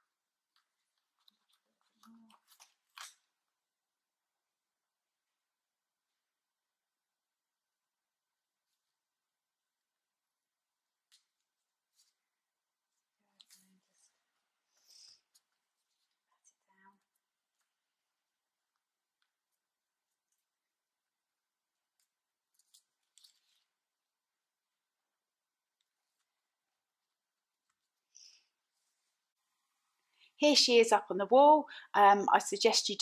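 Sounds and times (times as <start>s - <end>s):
paper rustling and crinkling: 0.5s - 3.4s, 21.9s - 23.9s
soft paper clicks: 13.3s - 14.1s, 21.9s - 23.7s.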